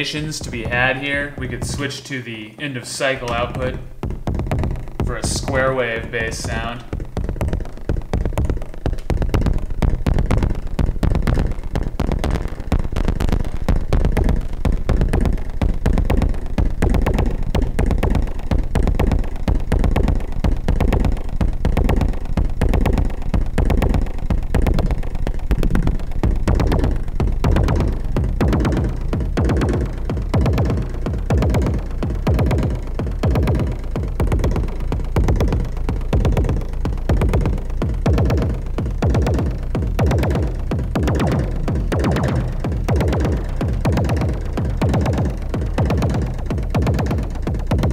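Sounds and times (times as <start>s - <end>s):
synthesized drum hits: 0.0s - 1.9s, 3.2s - 47.9s
heavy synth bass line: 0.0s - 47.9s.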